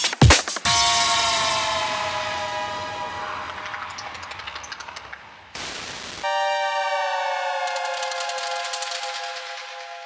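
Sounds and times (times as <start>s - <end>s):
siren-like synth chord falling: 0.7s - 4.7s, 5.6s - 9.6s.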